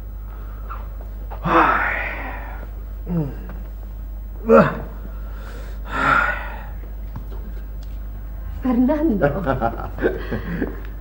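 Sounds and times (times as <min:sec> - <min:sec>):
breathy exhalation: 0:00.4 - 0:03.7, 0:04.4 - 0:06.9
man sighing: 0:01.4 - 0:03.6, 0:04.4 - 0:06.8.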